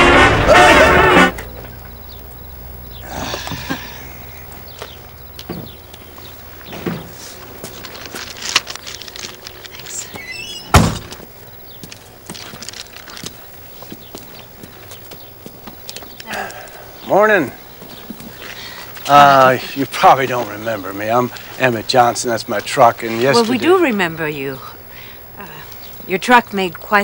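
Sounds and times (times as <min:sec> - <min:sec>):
footsteps: 0:04.5 - 0:16.7, 0:17.8 - 0:19.1
small knocks: 0:04.7 - 0:09.8
car door shutting: 0:10.1 - 0:11.3.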